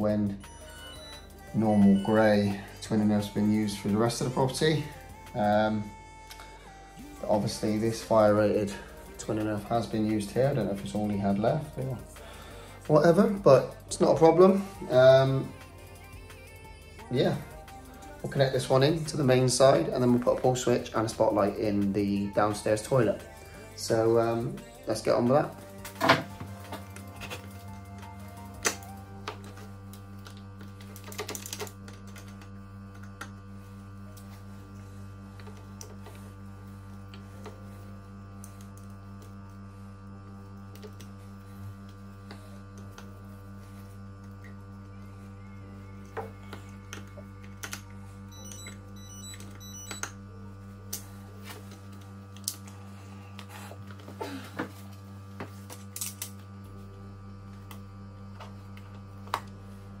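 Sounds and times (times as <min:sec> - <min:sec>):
low hum: 0:00.0 - 1:00.0
screwdriver and wire clicks: 0:30.2 - 0:33.3, 0:46.6 - 0:47.9.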